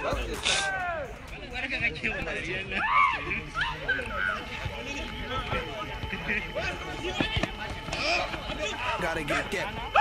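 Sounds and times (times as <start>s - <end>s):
players calling out: 0.0s - 10.0s.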